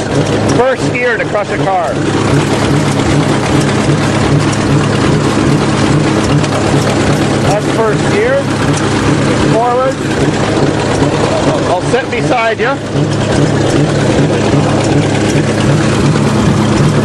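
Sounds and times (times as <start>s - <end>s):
bulldozer diesel engine running: 0.0s - 17.0s.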